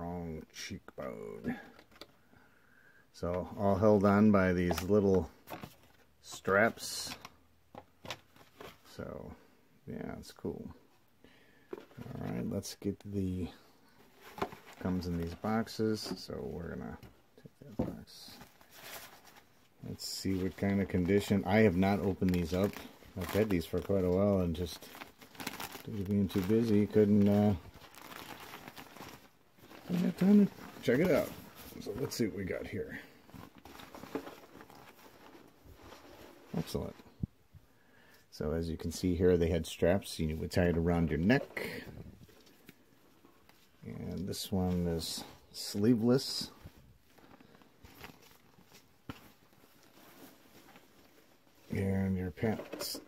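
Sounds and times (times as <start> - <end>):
plastic mask crinkling: 11.6 - 37.3, 38.9 - 53.0
thin plastic rustling and crackling: 20.0 - 32.7.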